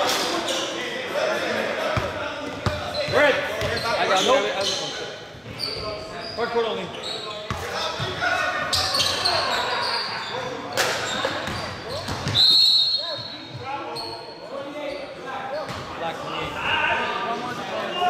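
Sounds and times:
sneakers squeaking: 0.0s - 0.8s, 1.9s - 16.6s.

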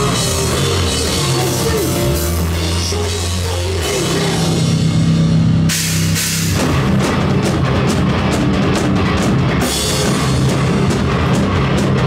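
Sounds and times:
distorted electric guitars riff: 0.0s - 12.0s
drums: 0.0s - 12.0s.

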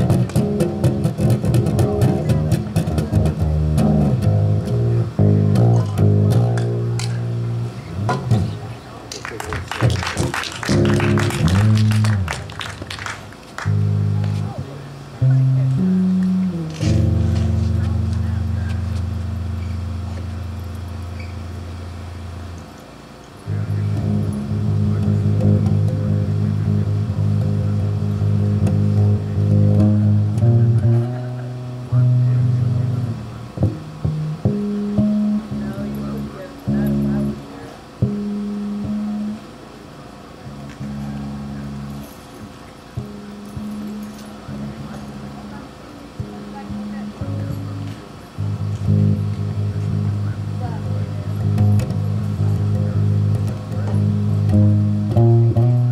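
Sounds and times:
electric bass guitar: 0.0s - 55.9s.

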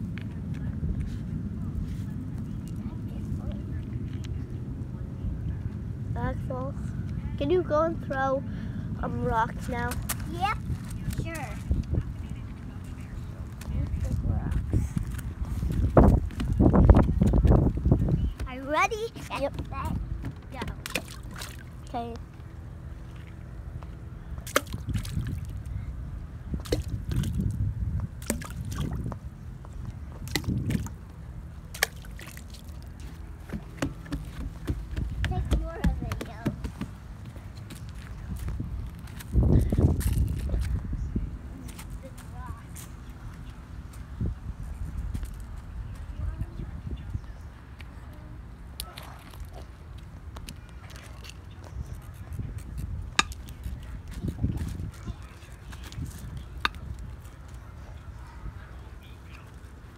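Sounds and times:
faint voices: 0.0s - 24.4s, 45.3s - 59.9s
wind rumble on microphone: 0.0s - 59.9s
water sloshing against a dock: 18.3s - 22.3s, 24.4s - 25.8s, 26.6s - 27.6s, 28.2s - 29.2s, 29.9s - 38.3s.

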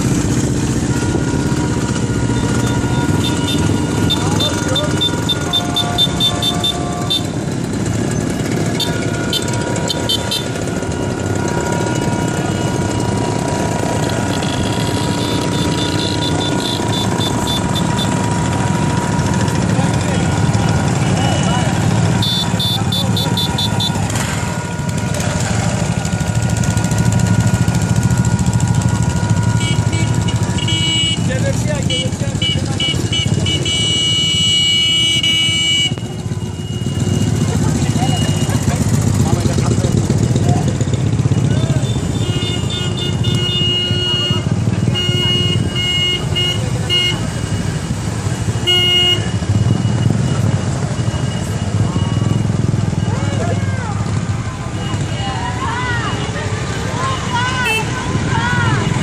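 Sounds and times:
small motorcycles riding past: 0.0s - 33.4s, 49.2s - 59.0s
sidecar motorcycle passing: 0.0s - 59.0s.

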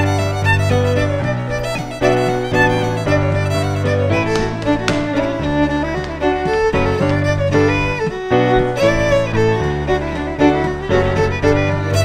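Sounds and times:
fiddle playing fast dance tune: 0.0s - 12.0s.

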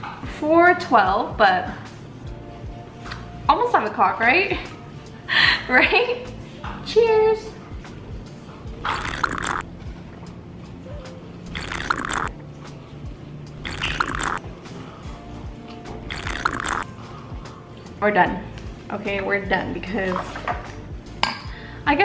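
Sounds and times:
soft background music: 0.0s - 22.0s
person gulping a drink: 8.8s - 9.6s, 11.5s - 12.3s, 13.6s - 14.4s, 16.0s - 16.9s.

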